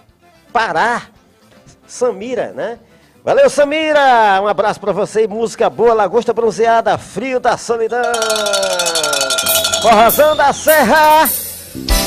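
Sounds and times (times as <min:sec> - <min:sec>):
man calling out words: 0:01.9 - 0:11.4
cattle bell clanking: 0:07.9 - 0:11.3.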